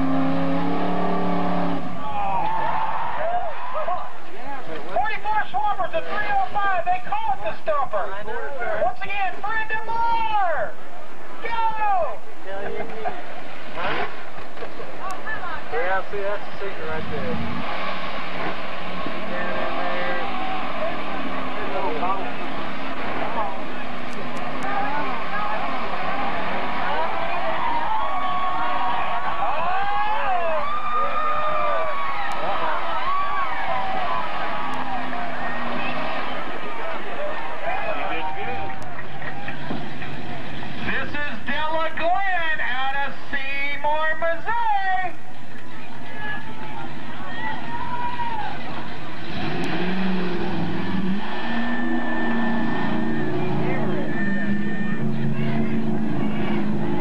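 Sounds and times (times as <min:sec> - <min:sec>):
crowd shouting and talking: 0:00.0 - 0:57.0
truck engines running hard: 0:00.0 - 0:57.0.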